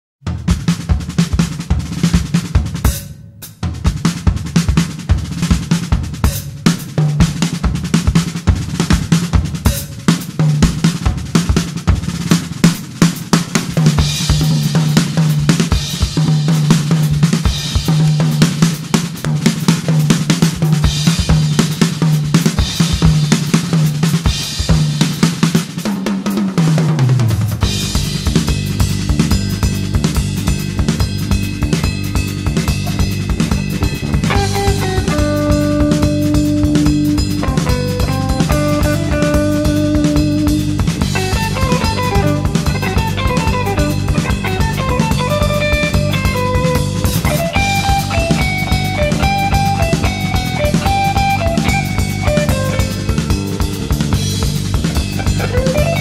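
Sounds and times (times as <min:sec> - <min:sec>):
drum kit playing fast: 0:00.2 - 0:56.0
jazz fusion band: 0:03.8 - 0:56.0.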